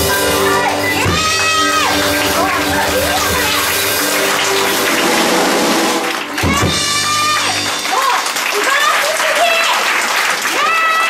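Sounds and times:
jazz piano trio playing: 0.0s - 8.5s.

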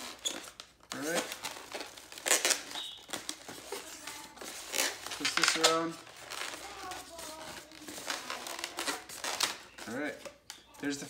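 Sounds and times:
balloon rubbing while twisted: 2.0s - 5.3s.

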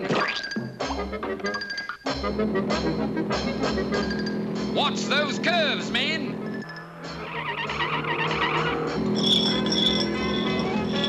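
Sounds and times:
car tires squealing: 6.4s - 11.0s.

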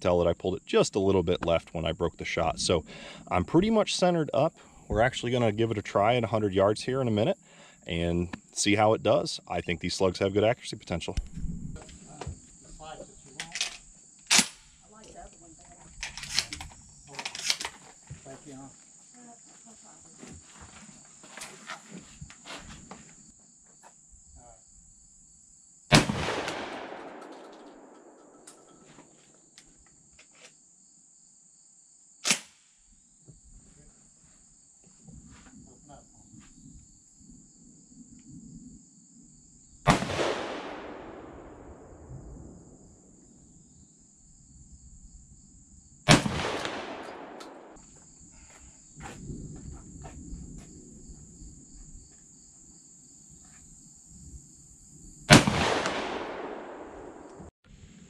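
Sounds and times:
sharp gun clack: 13.4s - 14.6s, 32.2s - 32.6s
shotgun shots echoing: 14.3s - 14.6s, 25.9s - 28.7s, 39.8s - 42.0s, 46.1s - 47.8s, 55.3s - 57.5s.

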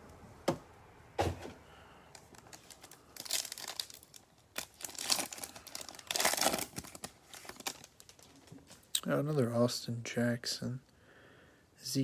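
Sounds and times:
foil pack tearing and crinkling: 2.2s - 8.4s.

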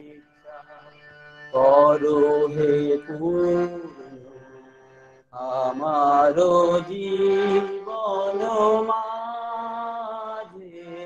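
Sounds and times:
man singing long gliding notes: 0.0s - 0.9s, 1.5s - 4.7s, 5.4s - 11.0s.

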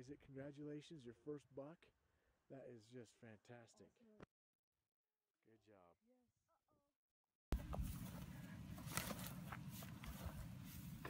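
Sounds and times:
faint footsteps: 7.5s - 11.0s
carcass dragged through dry grass: 7.6s - 11.0s.

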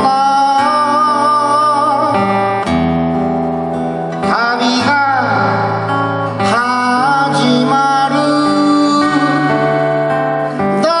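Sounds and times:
man singing: 0.0s - 2.6s, 4.1s - 11.0s
acoustic guitar chords: 0.0s - 11.0s.

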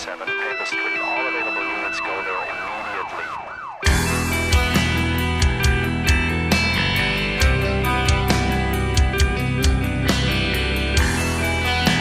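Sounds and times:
electric guitar: 0.0s - 12.0s
siren yelping: 0.5s - 4.7s.

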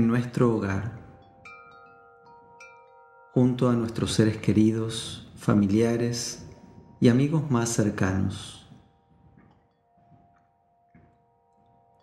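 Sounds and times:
chime notes ringing: 0.0s - 12.0s
soft meditation music: 0.0s - 12.0s.

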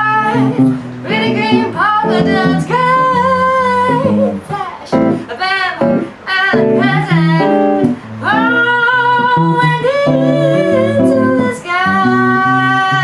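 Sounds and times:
electric guitar chords: 0.0s - 13.0s
woman singing: 0.0s - 13.0s.

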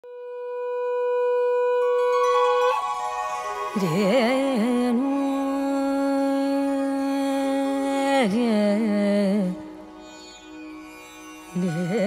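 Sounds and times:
musical tones: 1.8s - 5.2s.

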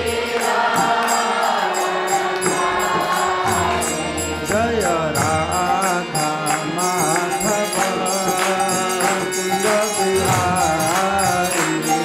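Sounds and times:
man chanting melody: 3.7s - 12.0s.

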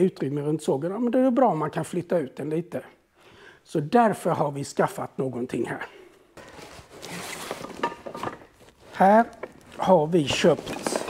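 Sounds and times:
clothing rustling: 6.2s - 11.0s.

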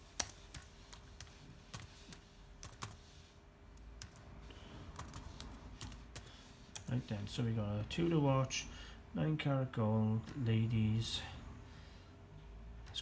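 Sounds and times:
laptop keyboard typing: 0.0s - 6.9s.

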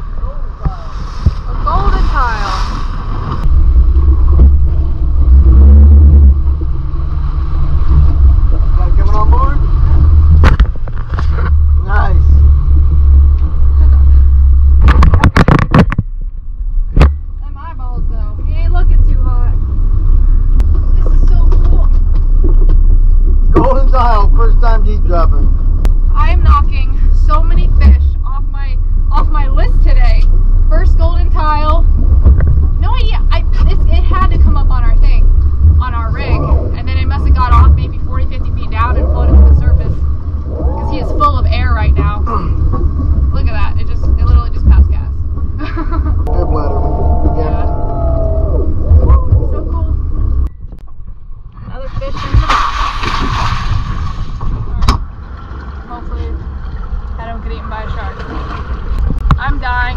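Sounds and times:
outboard engines rumbling: 0.0s - 59.9s
knocks and thuds: 14.8s - 16.2s, 32.0s - 32.8s
voices talking: 32.8s - 45.2s, 46.2s - 50.2s.

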